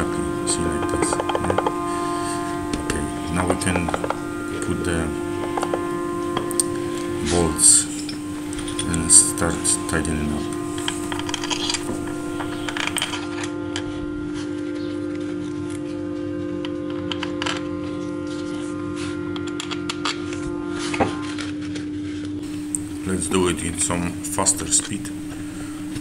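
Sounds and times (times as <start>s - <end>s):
background music sustained tone: 0.0s - 26.0s.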